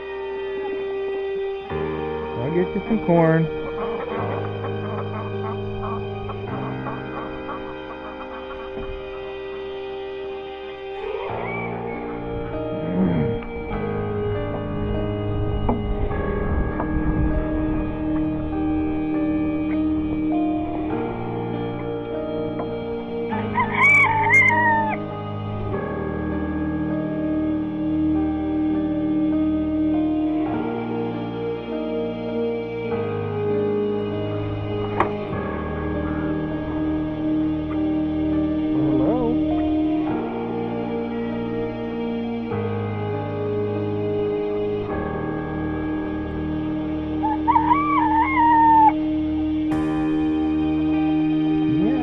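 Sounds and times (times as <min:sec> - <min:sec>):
background music: 0:00.0 - 0:52.0
rooster crowing: 0:23.3 - 0:25.1, 0:47.2 - 0:49.0.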